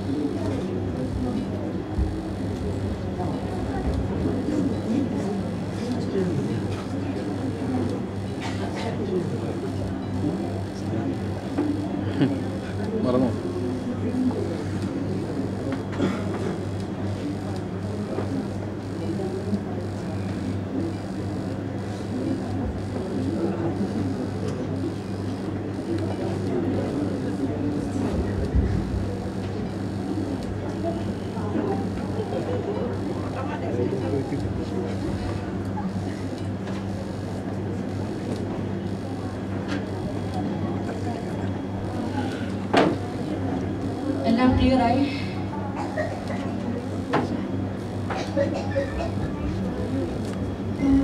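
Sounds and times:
low murmuring voices: 0.0 - 51.0
steady low hum: 0.0 - 51.0.

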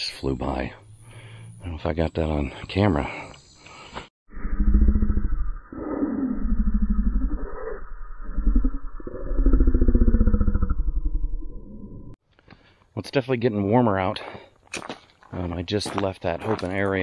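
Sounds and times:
low pulsing growl: 4.3 - 12.2.

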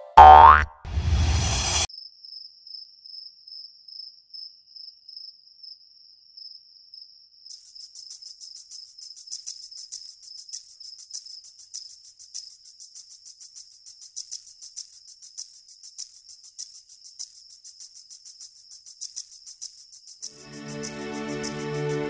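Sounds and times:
crickets chirping: 1.9 - 22.0.

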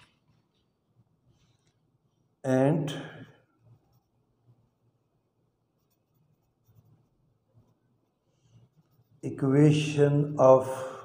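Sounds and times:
ballpoint pen scratching on paper: 3.7 - 4.2, 5.8 - 9.2.

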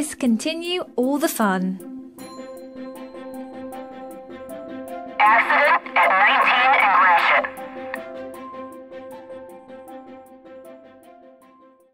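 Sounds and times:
background music: 0.0 - 11.9
loud voice: 5.2 - 7.6.

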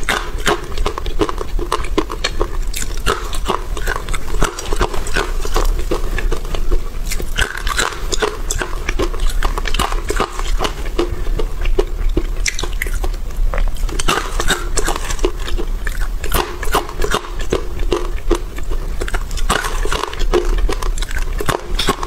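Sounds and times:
chewing crunchy chickpeas: 0.0 - 22.0.

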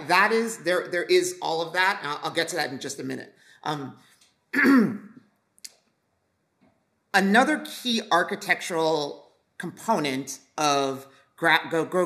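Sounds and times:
woman clearing throat: 4.6 - 5.2.

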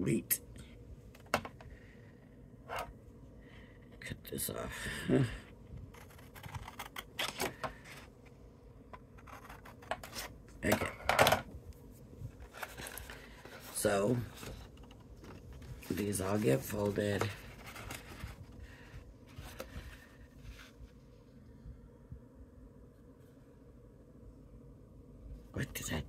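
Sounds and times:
paper rustling and sliding: 12.3 - 21.0.

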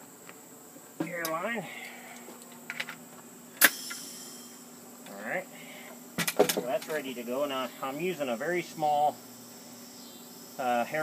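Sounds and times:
air hiss: 3.6 - 4.8.

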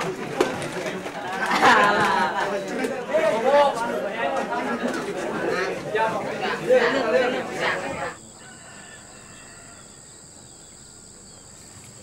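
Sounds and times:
young people chattering: 0.0 - 9.4.

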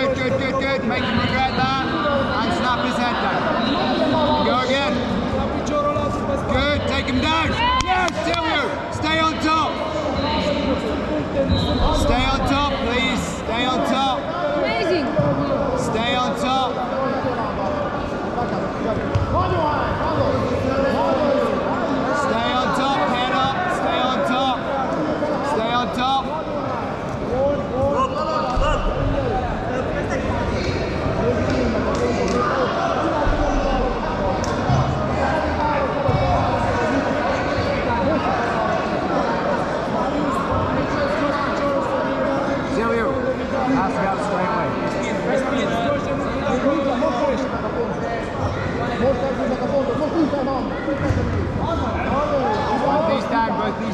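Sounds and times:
people talking and calling out: 0.0 - 53.9.

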